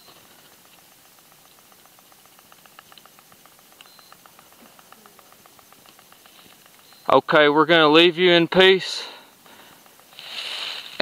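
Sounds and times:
faint high-pitched hiss: 0.0 - 11.0
person speaking: 4.5 - 5.5.

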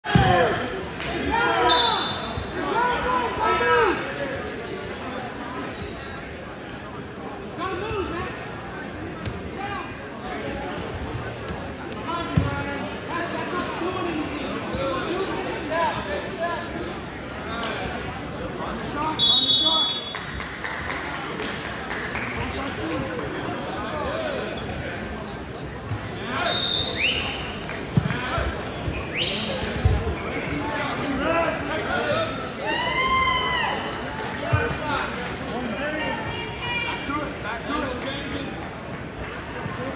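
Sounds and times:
crowd shouting and talking: 0.0 - 39.9
referee's whistle: 1.6 - 2.6, 19.2 - 20.1, 26.4 - 27.4, 29.0 - 29.6
shoe squeaking on mat: 28.8 - 30.9.

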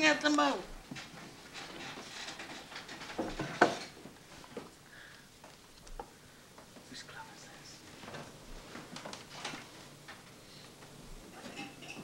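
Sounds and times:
person whispering: 6.9 - 7.8.

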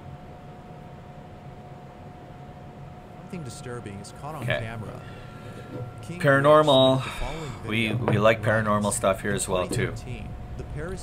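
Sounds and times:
faint steady tone: 0.0 - 11.0
low hum and hiss: 0.0 - 11.0.

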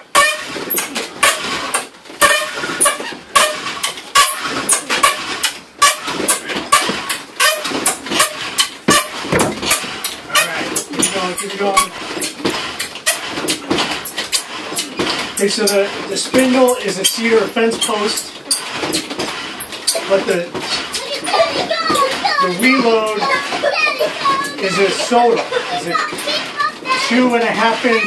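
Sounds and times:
wooden fire drill squeaking and grinding: 0.0 - 28.0.

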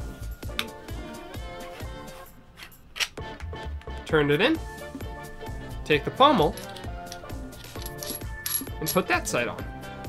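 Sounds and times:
background music: 0.0 - 10.0
light metallic clinks: 6.6 - 9.1.

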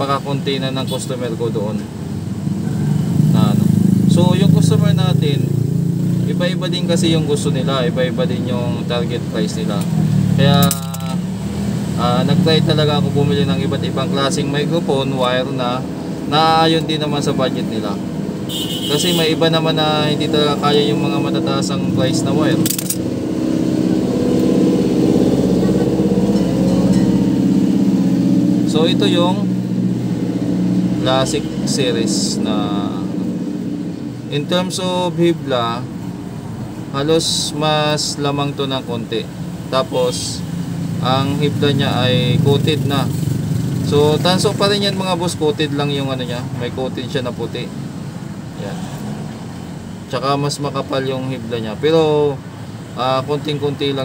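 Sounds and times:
low engine rumble: 6.3 - 52.3.

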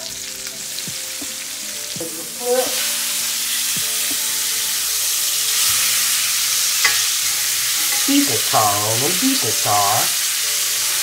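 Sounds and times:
steaks sizzling in a skillet: 0.0 - 11.0
metal fork working meat: 3.9 - 11.0.

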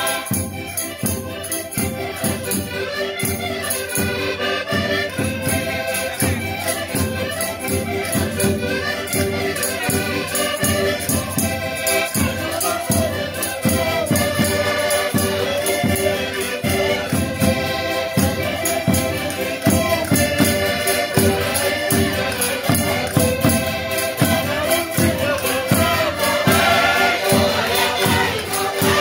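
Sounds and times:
accordions playing folk tune: 0.0 - 29.0.

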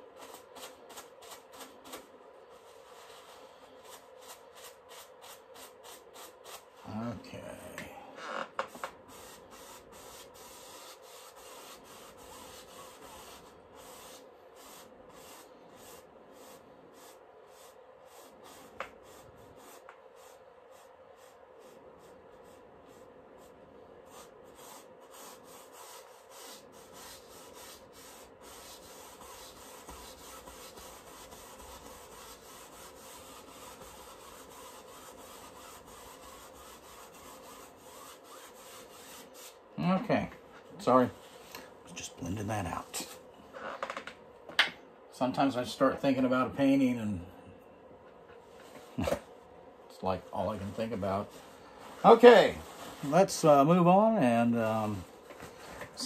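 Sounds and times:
paintbrush scrubbing on canvas: 0.1 - 7.5, 8.7 - 39.7, 50.0 - 53.9.

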